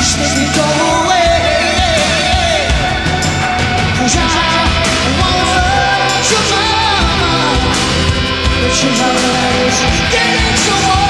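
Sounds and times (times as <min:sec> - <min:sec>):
heavy drum beat: 0:00.0 - 0:11.0
rock band playing: 0:00.0 - 0:11.0
synthesizer chords: 0:00.0 - 0:11.0.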